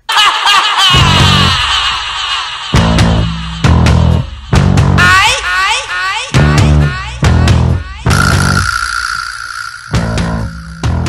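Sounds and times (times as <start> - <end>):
high steady tone: 8.1 - 11.0.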